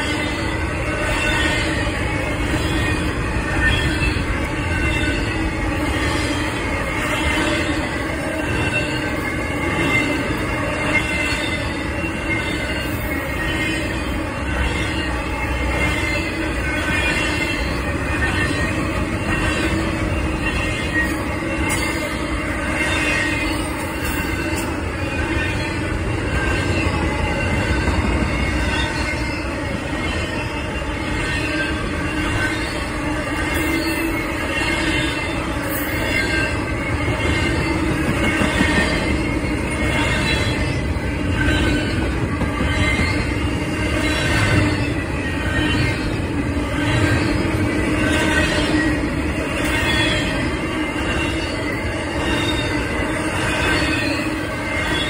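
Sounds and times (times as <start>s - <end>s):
high squeal of wheels: 0.0s - 55.0s
rumble of train wheels on rail: 0.0s - 55.0s.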